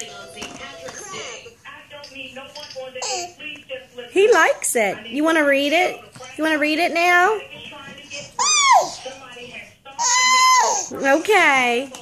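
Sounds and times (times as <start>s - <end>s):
baby squealing: 8.4s - 9.0s, 10.0s - 11.0s.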